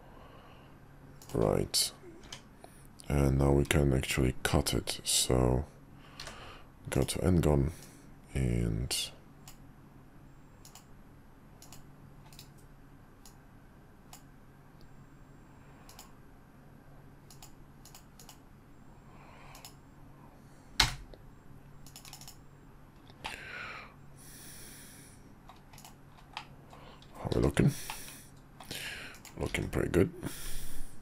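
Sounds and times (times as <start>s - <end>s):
mouse and keyboard clicks: 11.6s - 13.4s, 21.8s - 22.4s, 25.5s - 26.5s.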